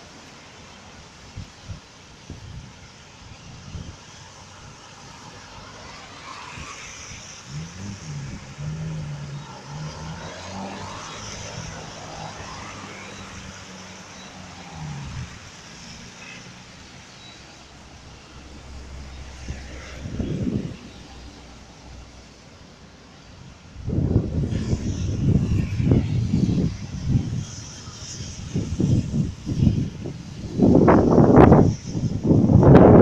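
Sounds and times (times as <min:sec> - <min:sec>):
tyre and road noise: 0:00.0 - 0:33.0
car engine: 0:05.0 - 0:33.0.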